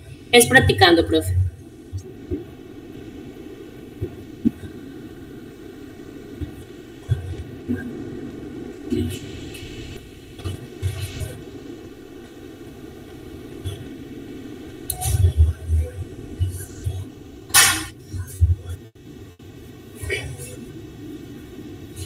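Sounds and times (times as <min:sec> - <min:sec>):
low microphone background noise: 0:00.0 - 0:22.0
faint indistinct voices: 0:14.8 - 0:22.0.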